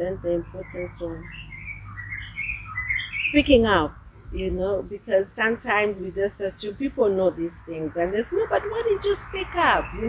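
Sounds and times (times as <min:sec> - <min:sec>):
small birds chirping: 0:00.0 - 0:10.0
steady low hum: 0:00.0 - 0:10.0.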